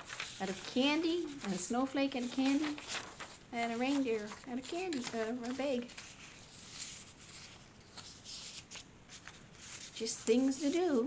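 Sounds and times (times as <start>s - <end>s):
paper rustling and sliding: 0.0s - 10.9s.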